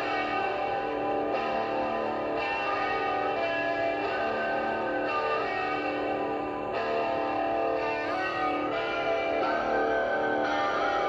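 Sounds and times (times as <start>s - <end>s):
rock song with electric guitar: 0.0s - 11.0s.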